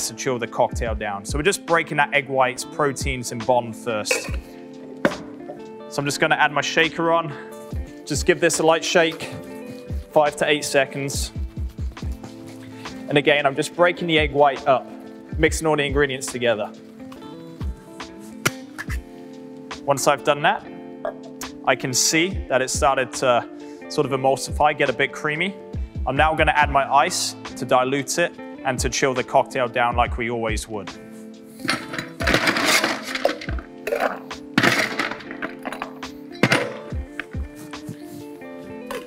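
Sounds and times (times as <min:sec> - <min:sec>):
music with a steady beat: 0:03.0 - 0:05.9, 0:07.5 - 0:13.2, 0:14.0 - 0:19.9, 0:25.8 - 0:26.8, 0:29.9 - 0:39.0
man speaking: 0:10.2 - 0:11.4
ice cubes clinking in metal tin: 0:31.7 - 0:37.0.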